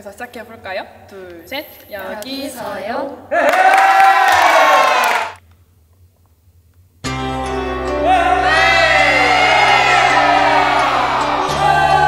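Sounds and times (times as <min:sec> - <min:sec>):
young women cheering and shouting: 0:08.1 - 0:12.0.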